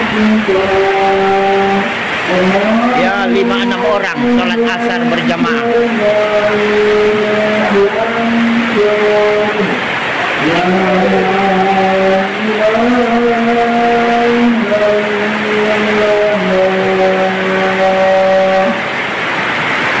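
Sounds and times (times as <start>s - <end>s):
man chanting prayer call: 0.0s - 18.9s
heavy rain hiss: 0.0s - 20.0s.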